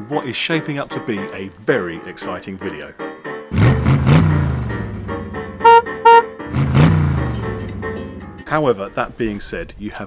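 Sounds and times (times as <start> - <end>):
music: 0.0 - 10.0
cartoon car engine passing: 3.5 - 8.0
car horn toots: 5.6 - 6.3.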